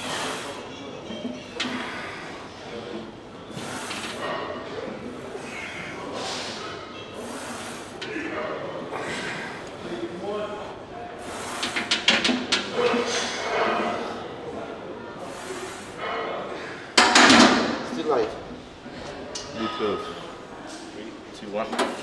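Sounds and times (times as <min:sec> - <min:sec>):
indistinct voices in echoing gym: 0:00.0 - 0:22.0.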